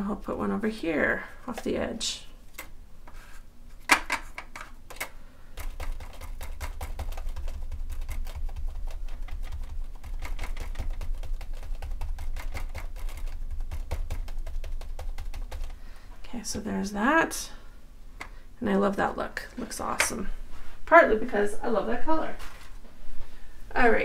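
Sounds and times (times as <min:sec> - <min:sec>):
sponge tapping on plastic stencil: 0:05.6 - 0:15.8.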